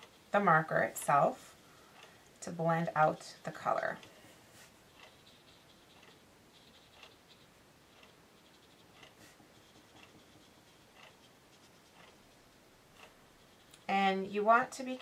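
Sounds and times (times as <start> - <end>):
brush scratching on paper: 0.0 - 1.8, 2.4 - 14.8.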